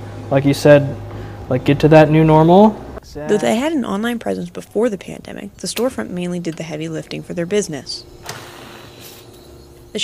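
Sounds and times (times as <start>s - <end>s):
espresso machine humming: 8.0s - 10.0s
espresso machine hiss: 8.3s - 9.7s.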